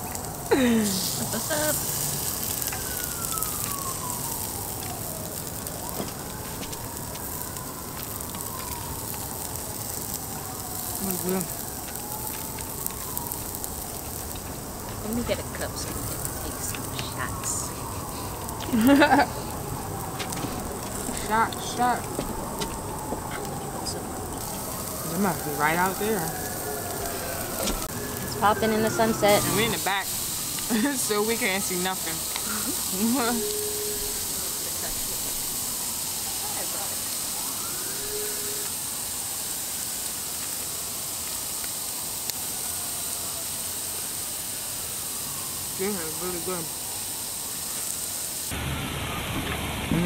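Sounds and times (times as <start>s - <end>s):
emergency siren wailing: 0.0s - 50.0s
meat sizzling on grill: 0.0s - 50.0s.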